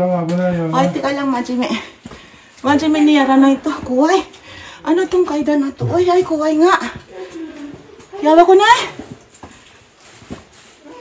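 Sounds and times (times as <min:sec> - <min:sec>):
footsteps on stone stairs: 0:00.7 - 0:10.8.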